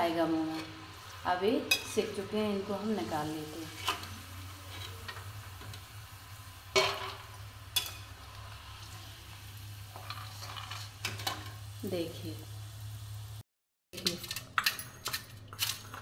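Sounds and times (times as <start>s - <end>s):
peanuts sizzling in hot oil: 0.0s - 13.4s
metal skimmer scraping a pan: 3.0s - 5.9s, 6.7s - 11.6s.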